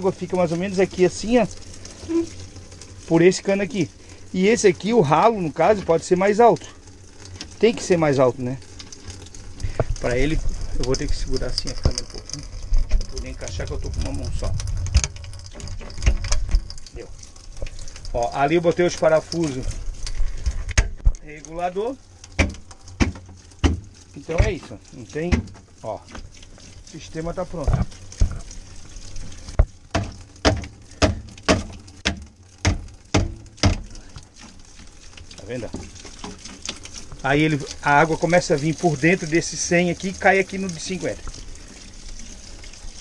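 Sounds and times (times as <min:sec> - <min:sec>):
pipe knocks and clicks: 0:09.6 - 0:18.1, 0:20.0 - 0:21.2, 0:22.2 - 0:26.8, 0:27.6 - 0:34.3
hammer knocking on plastic pipe: 0:22.4 - 0:23.8, 0:29.6 - 0:33.9.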